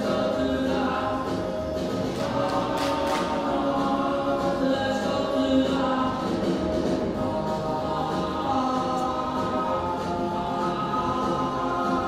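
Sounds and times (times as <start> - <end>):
choir singing sustained notes: 7.0 - 12.0.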